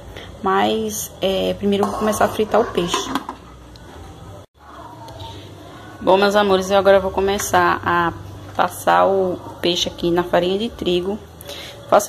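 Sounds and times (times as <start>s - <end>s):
faint kitchen background noise: 0.0s - 12.0s.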